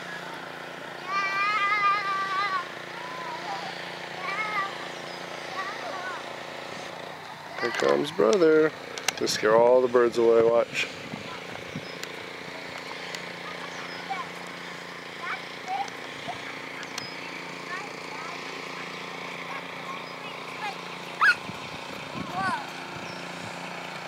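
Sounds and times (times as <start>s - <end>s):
low mechanical hum: 0.0s - 24.0s
short high calls: 20.9s - 21.5s.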